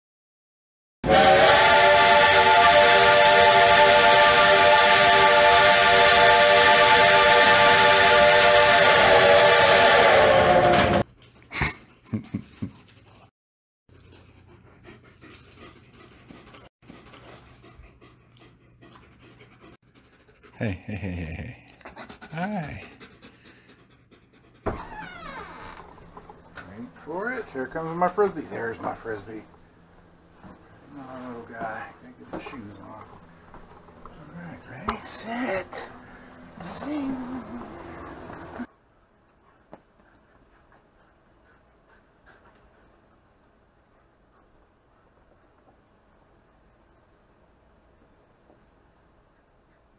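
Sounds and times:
loud noise stopping abruptly: 0:06.9 - 0:11.0
dogs panting: 0:13.9 - 0:45.8, 0:48.6 - 0:49.9
faint backyard ambience: 0:13.9 - 0:49.9.

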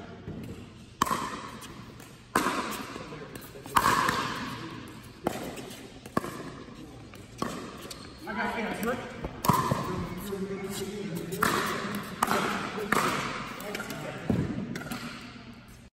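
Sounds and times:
ball bouncing on court: 0:00.2 - 0:10.4, 0:11.2 - 0:15.4.

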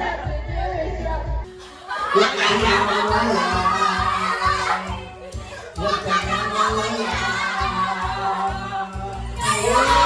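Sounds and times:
group of voices singing and shouting: 0:00.0 - 0:10.0
karaoke backing track with heavy beat: 0:00.0 - 0:10.0.

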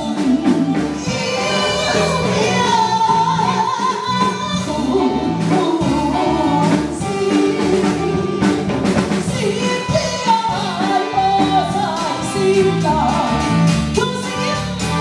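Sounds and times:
amplified opera singing: 0:00.0 - 0:08.4
instrumental accompaniment: 0:00.0 - 0:15.0.

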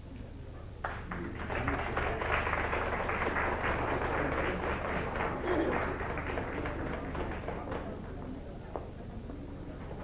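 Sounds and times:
audience applauding: 0:00.8 - 0:08.2.

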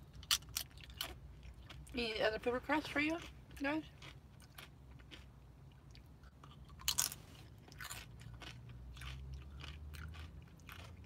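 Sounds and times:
crisp chewing crunches: 0:00.0 - 0:02.0, 0:02.8 - 0:11.0
chip bitten with crunch: 0:00.1 - 0:02.0, 0:03.1 - 0:11.0.

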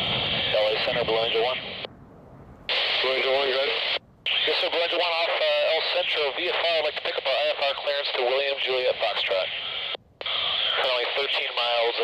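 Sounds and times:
radio hiss: 0:00.0 - 0:01.9, 0:02.7 - 0:12.0
radio voice transmissions: 0:00.1 - 0:01.9, 0:02.7 - 0:12.0.

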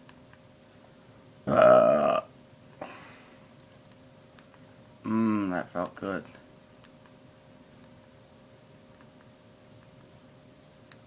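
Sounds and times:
man burping: 0:01.5 - 0:02.3.

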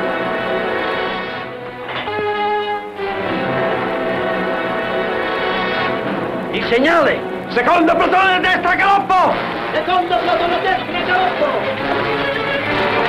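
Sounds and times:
orchestral strings chords: 0:00.0 - 0:13.0.

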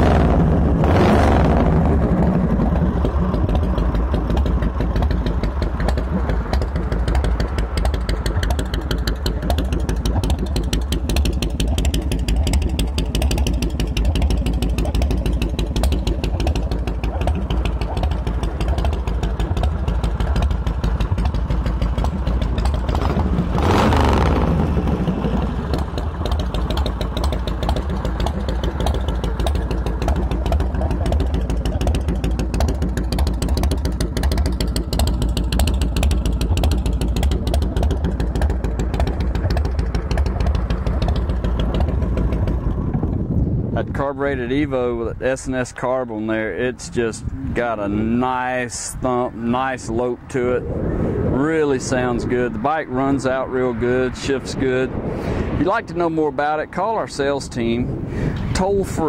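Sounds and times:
motorcycle engine idling: 0:00.0 - 0:44.4.

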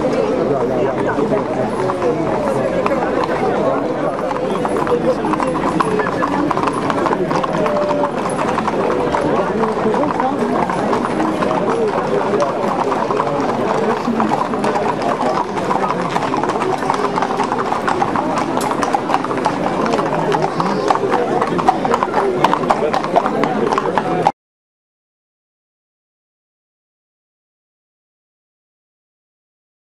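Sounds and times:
horse hooves on pavement: 0:00.0 - 0:24.3
crowd chatter: 0:00.0 - 0:24.4.

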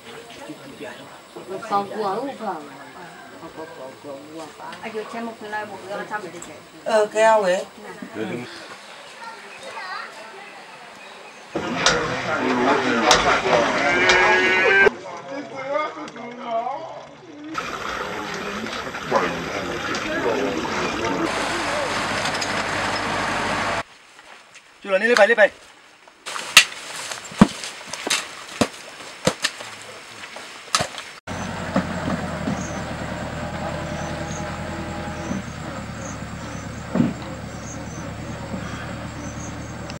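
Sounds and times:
tractor engine running: 0:19.8 - 0:23.8, 0:31.3 - 0:40.0
loud thump: 0:36.8 - 0:37.3.

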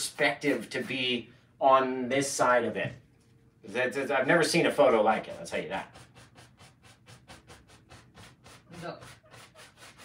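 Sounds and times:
painting tool scrubbing canvas: 0:00.0 - 0:01.2, 0:04.6 - 0:10.0.

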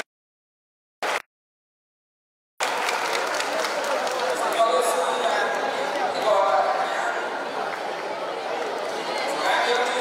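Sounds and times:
children chattering: 0:03.5 - 0:10.0.

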